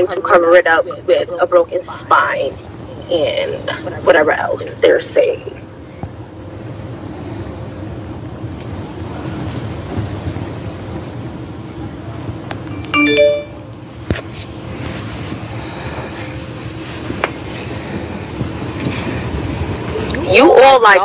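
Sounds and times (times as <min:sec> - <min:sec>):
steady background noise: 0:00.0 - 0:21.0
phone notification chime: 0:12.7 - 0:13.7.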